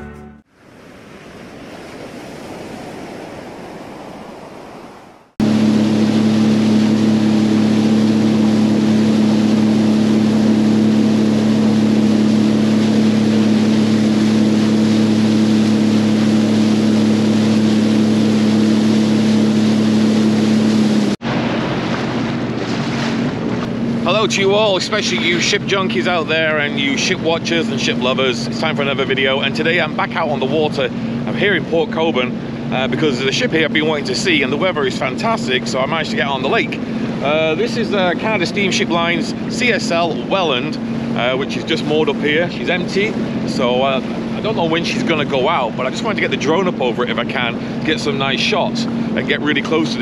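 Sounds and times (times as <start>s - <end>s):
water noise: 0.0s - 50.0s
steady engine hum: 0.4s - 50.0s
wind: 0.5s - 50.0s.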